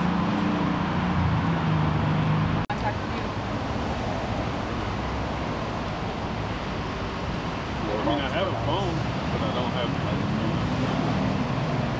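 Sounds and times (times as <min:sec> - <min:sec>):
freeway traffic rumble: 0:00.0 - 0:11.9.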